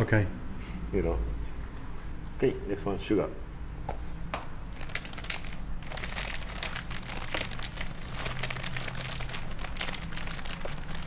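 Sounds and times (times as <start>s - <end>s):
plastic bag crinkling: 4.8s - 11.0s.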